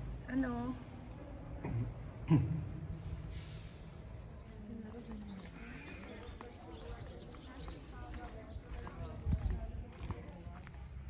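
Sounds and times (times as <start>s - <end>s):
faint voices: 4.2s - 11.0s
footsteps on cobblestones: 4.5s - 11.0s.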